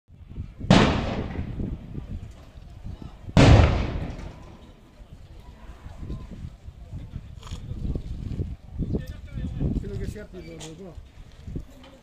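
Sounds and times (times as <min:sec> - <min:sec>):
loud echoing bangs: 0:00.7 - 0:01.8, 0:03.4 - 0:04.6.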